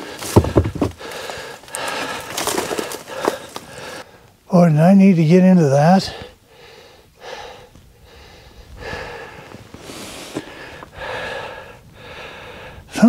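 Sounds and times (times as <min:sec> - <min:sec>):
man breathing hard: 0:00.0 - 0:04.3, 0:06.1 - 0:13.0.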